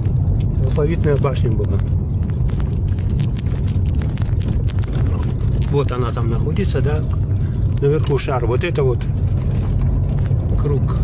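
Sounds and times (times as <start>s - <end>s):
road and engine rumble: 0.0s - 11.0s.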